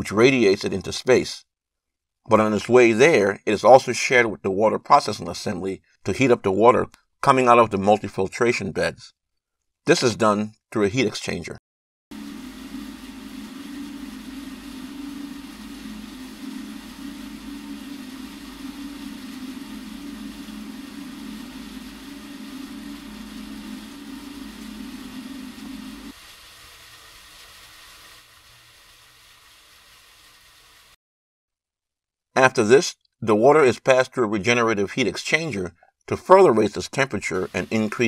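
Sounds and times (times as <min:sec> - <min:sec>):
machine hum with low drone: 0:12.1 - 0:26.1
hiss: 0:12.2 - 0:31.0, 0:37.2 - 0:38.0.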